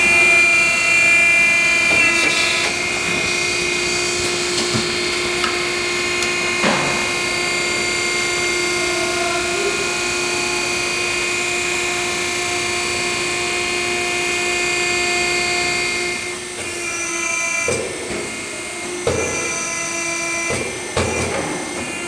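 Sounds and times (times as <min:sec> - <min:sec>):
machine motor hum with whining: 0:00.0 - 0:22.0.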